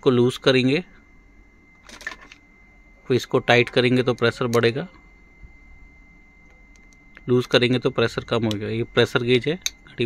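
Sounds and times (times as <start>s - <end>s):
faint high-pitched tone: 0.0s - 10.0s.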